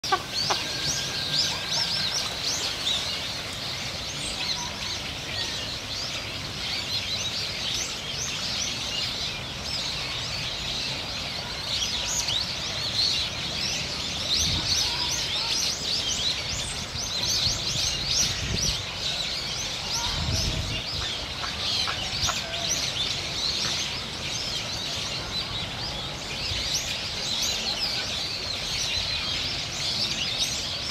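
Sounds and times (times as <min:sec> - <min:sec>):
birds chirping and calling: 0:00.0 - 0:30.9.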